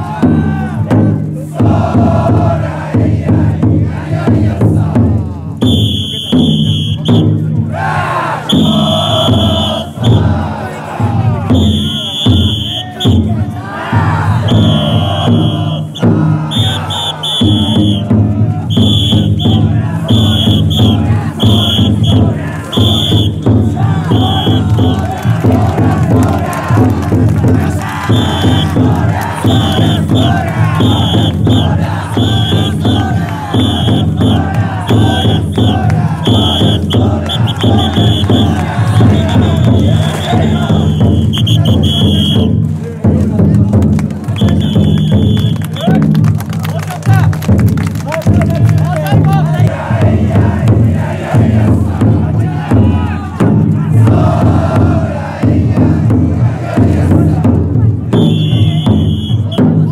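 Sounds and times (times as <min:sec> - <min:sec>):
crowd shouting and chanting: 0:00.0 - 0:59.9.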